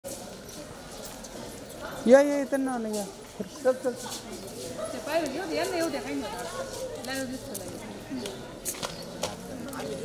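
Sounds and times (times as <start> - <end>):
footsteps on concrete: 2.8 - 10.0.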